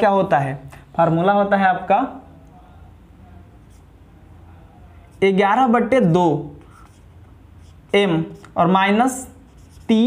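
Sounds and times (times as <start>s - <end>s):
marker pen scratching on whiteboard: 3.6s - 4.0s, 6.5s - 10.0s.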